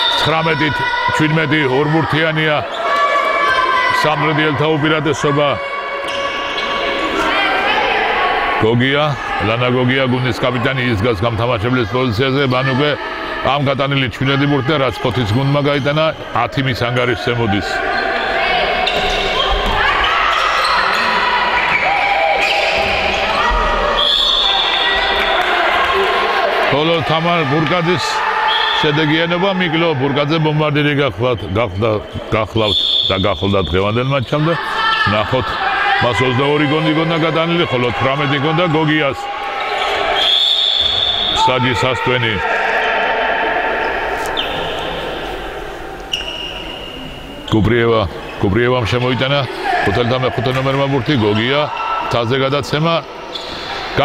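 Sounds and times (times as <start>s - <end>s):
players' voices: 0.0s - 54.0s
shoes squeaking on floor: 17.9s - 25.2s, 46.1s - 48.4s.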